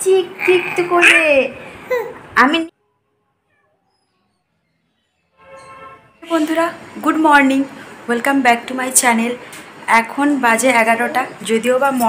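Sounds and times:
baby vocalising: 0.3 - 2.3.

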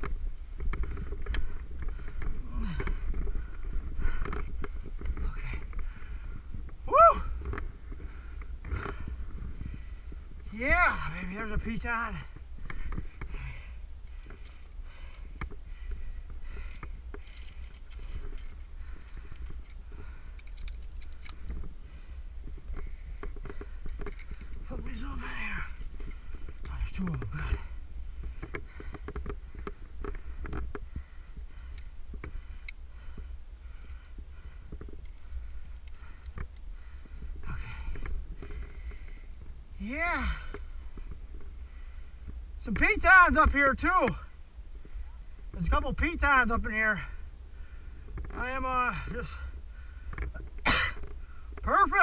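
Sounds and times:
climbing gear clicks and knocks: 0.0 - 41.8, 48.0 - 52.0
wind rumble on microphone: 0.0 - 52.0
climber vocal sounds: 1.4 - 4.4, 6.8 - 7.6.

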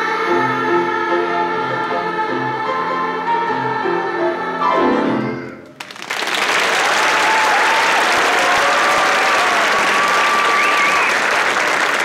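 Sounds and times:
choir singing in harmony: 0.0 - 5.6
piano accompaniment: 0.0 - 5.8.

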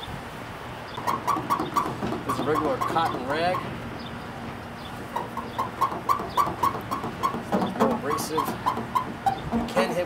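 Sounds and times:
rag squeaking on car paint: 1.0 - 10.0.

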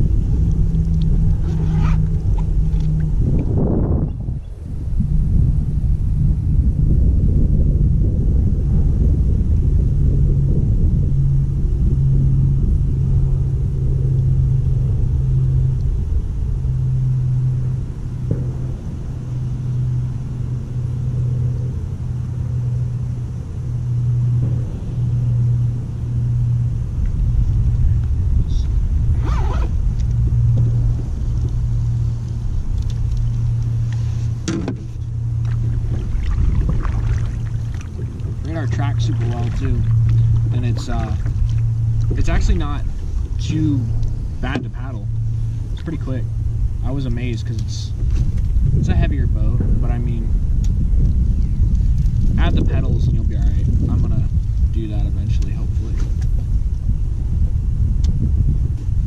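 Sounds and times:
low motor drone: 0.0 - 59.0
low rumble: 0.0 - 59.0.

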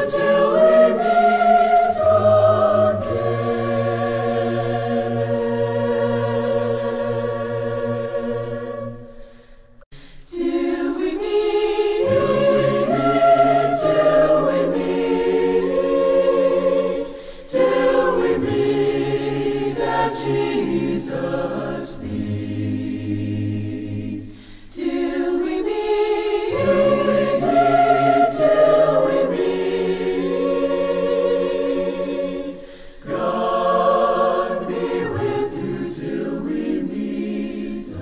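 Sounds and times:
choir singing a hymn: 0.0 - 9.5, 10.2 - 38.0.

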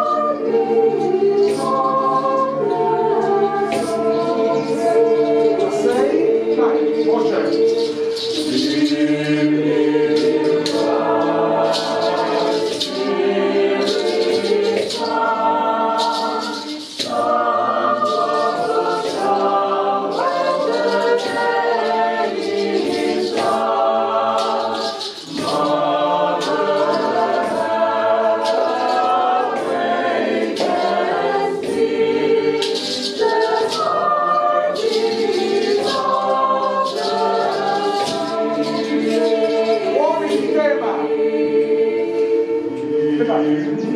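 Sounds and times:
small choir singing: 0.0 - 43.9.

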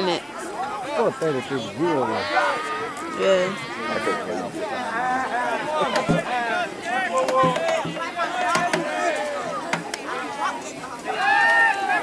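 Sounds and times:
people talking: 0.0 - 12.0
sharp knocks: 7.3 - 9.0.

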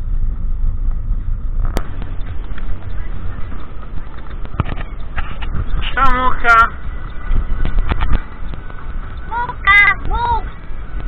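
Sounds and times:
vehicle rolling on gravel: 0.4 - 11.0.

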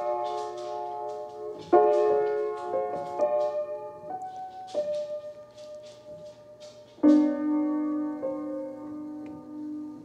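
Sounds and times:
upright piano notes and chords: 0.0 - 10.0.

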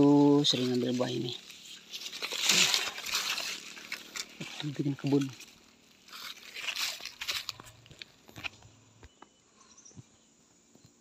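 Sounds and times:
leaves rustling and crackling: 0.0 - 8.6.

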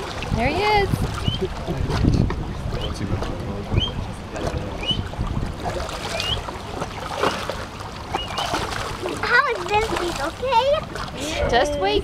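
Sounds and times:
water sloshing and splashing: 0.0 - 12.0
wind rumbling on microphone: 0.0 - 12.0.

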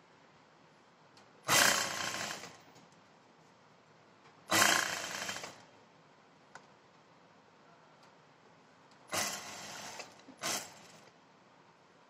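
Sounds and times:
sewing machine stitching: 1.5 - 2.6, 4.5 - 5.6, 9.1 - 11.1.

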